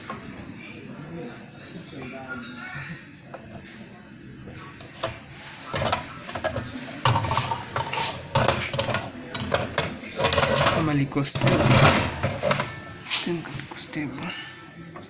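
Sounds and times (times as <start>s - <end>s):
voices talking: 0.0s - 15.0s
small hard objects clattering: 4.8s - 13.3s.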